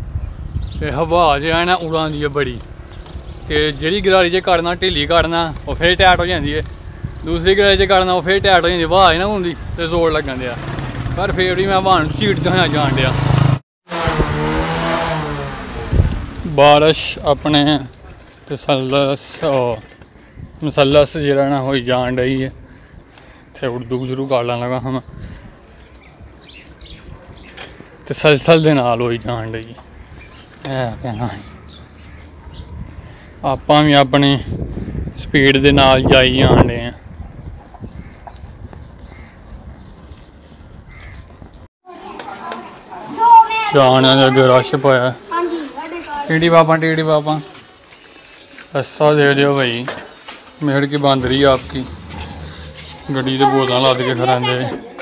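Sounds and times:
wind noise while cycling: 0.0 - 1.0, 4.8 - 10.2, 15.9 - 16.4, 25.1 - 27.6, 32.1 - 33.4, 34.3 - 41.7
faint high chirps: 46.1 - 48.2
low engine hum: 51.0 - 53.8.

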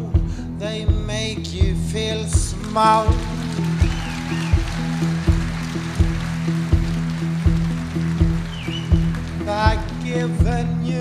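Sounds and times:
live band playing: 0.0 - 11.0
low thumping beat: 0.0 - 11.0.

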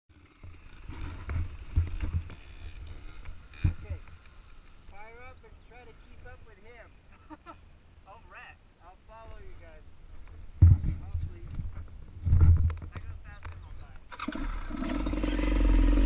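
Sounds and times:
person laughing: 7.1 - 7.6
microphone knocks: 10.6 - 13.6.

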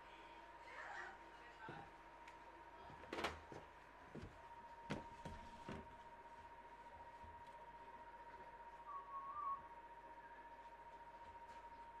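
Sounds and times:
faint high hum: 0.0 - 12.0
brief wavering whistle: 8.9 - 10.5.

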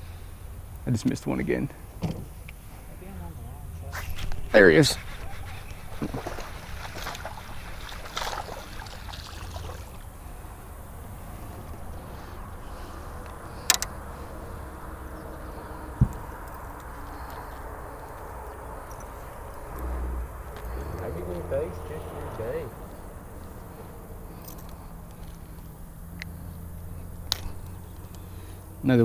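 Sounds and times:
low steady rumble: 0.0 - 29.0.

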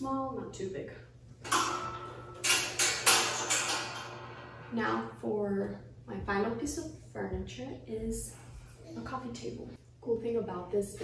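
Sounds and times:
table clattering: 1.4 - 5.1.

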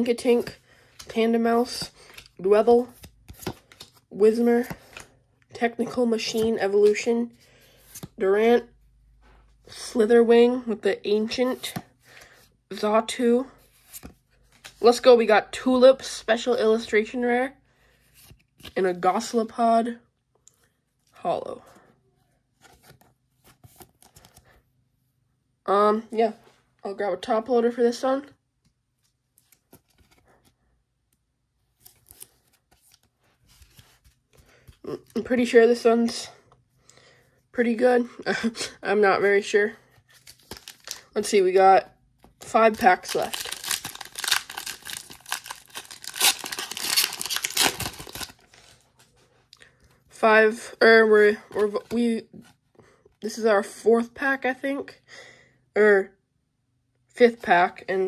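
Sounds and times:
foil wrapper tearing and crinkling: 42.8 - 48.6.

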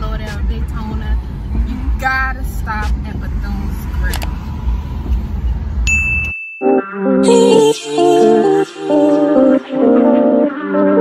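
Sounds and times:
music: 0.0 - 1.2, 6.6 - 11.0
low car cabin rumble: 0.0 - 5.9
bright bell ding: 5.9 - 7.6.

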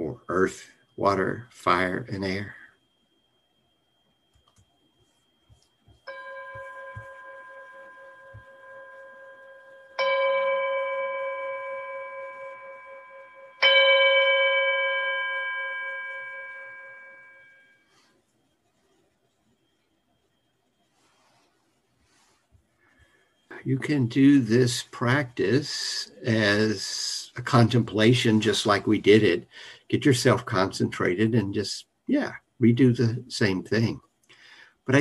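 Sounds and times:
meditation bell ringing: 6.0 - 18.1.

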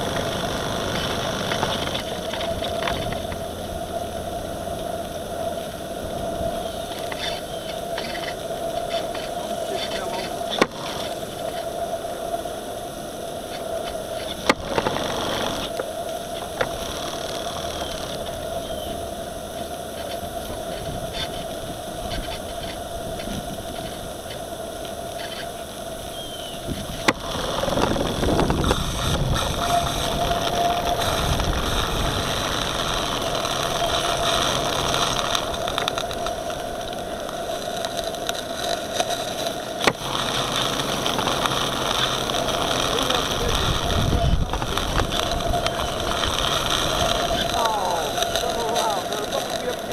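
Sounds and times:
model boat steam engine: 0.0 - 49.9
water: 0.0 - 49.9
wind noise: 0.0 - 49.9.

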